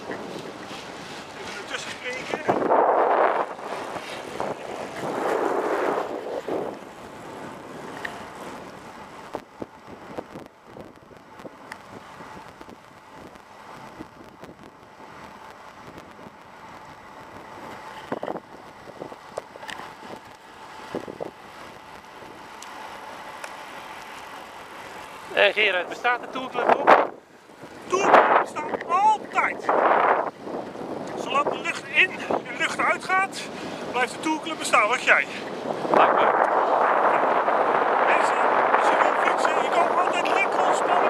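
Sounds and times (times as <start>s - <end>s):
wind noise on microphone: 0.0s - 22.6s, 25.3s - 41.0s
tyre noise on asphalt: 0.0s - 41.0s.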